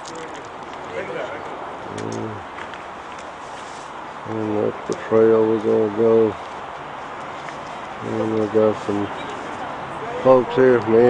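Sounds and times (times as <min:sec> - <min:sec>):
faint outdoor background noise: 0:00.0 - 0:11.0
man humming low vowel: 0:01.9 - 0:02.4.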